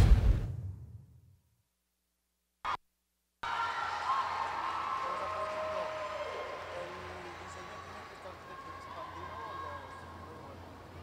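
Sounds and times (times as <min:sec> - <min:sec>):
audience cheering and clapping: 0:03.4 - 0:10.5.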